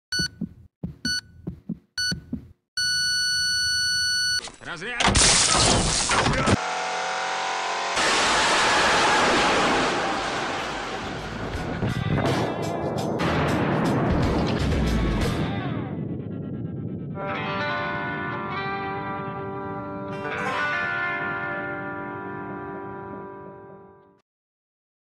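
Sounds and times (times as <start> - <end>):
electronic countdown beeps: 0.1 - 4.4
explosion blast and roaring fire: 8.0 - 16.8.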